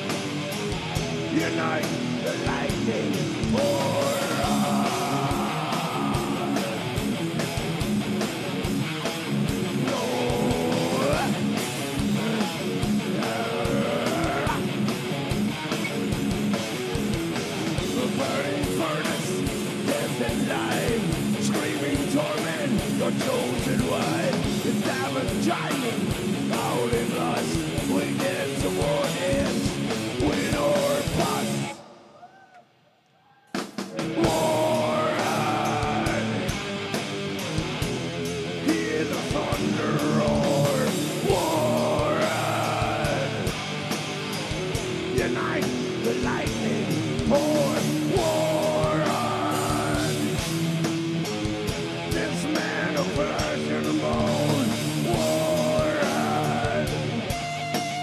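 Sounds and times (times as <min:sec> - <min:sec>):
heavy metal band playing: 0:00.0 - 0:32.0, 0:33.6 - 0:58.0.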